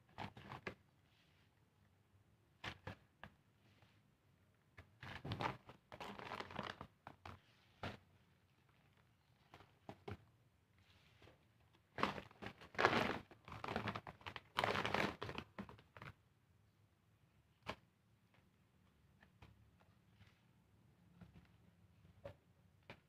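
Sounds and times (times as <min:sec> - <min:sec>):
plastic sacks crinkling: 0:12.0 - 0:15.5.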